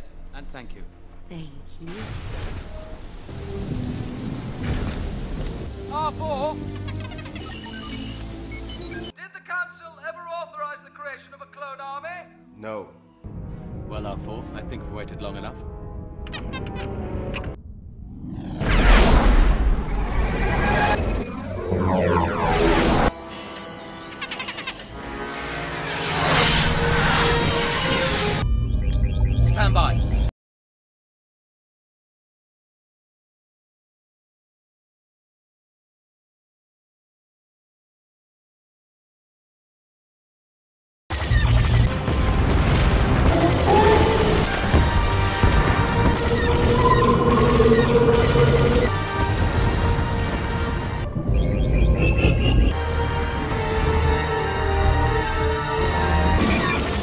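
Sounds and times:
explosions: 0:01.9 - 0:05.7, 0:17.6 - 0:23.1, 0:41.7 - 0:50.4
rush of noise: 0:18.2 - 0:23.2
gliding sweeps: 0:19.5 - 0:28.4.

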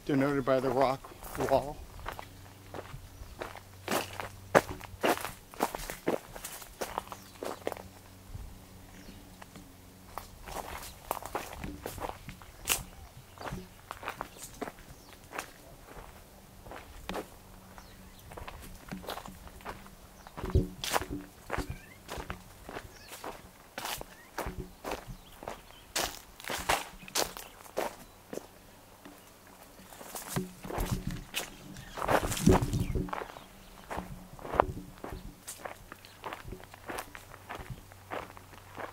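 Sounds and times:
footsteps crunching on dry leaves: 0:00.0 - 0:38.9.

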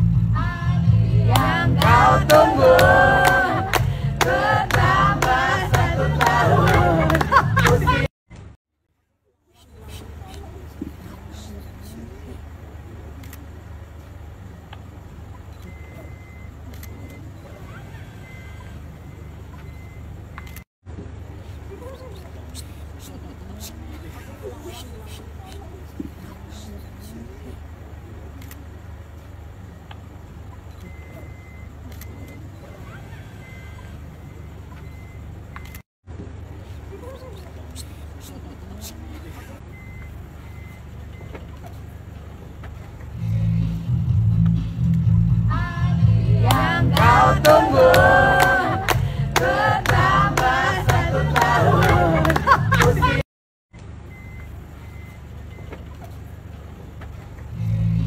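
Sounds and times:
low background rumble: 0:00.0 - 0:08.1, 0:36.4 - 0:53.2
voices singing: 0:00.0 - 0:08.1, 0:45.4 - 0:53.2
vehicle idling: 0:00.0 - 0:08.6, 0:09.5 - 0:53.2, 0:53.8 - 0:58.0
music with pulsing bass: 0:43.2 - 0:48.2.

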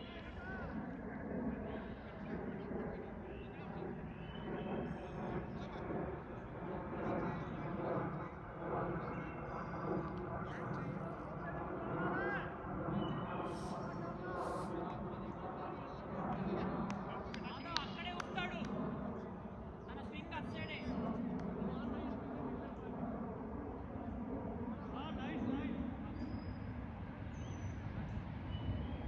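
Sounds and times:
distant chatter of voices: 0:00.0 - 0:27.2
outdoor background noise: 0:00.0 - 0:29.0.

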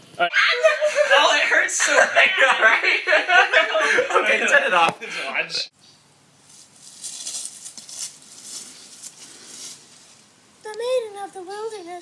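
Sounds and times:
leaves rustling underfoot: 0:05.8 - 0:12.0.

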